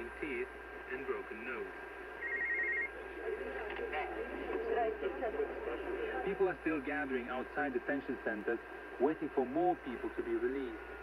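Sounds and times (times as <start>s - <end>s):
faint steady whistle: 2.2s - 3.0s
band-limited radio voice: 5.5s - 10.8s.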